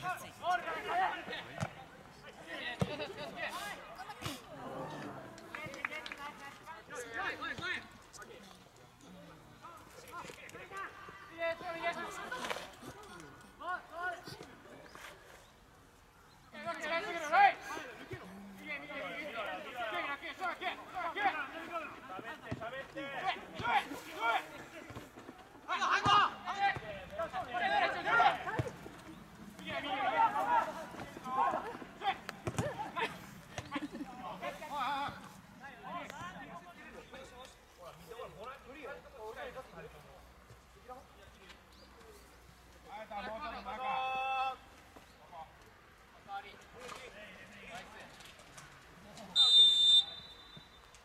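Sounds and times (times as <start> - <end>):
voices shouting: 25.7 - 33.8
football being kicked: 32.4 - 32.8.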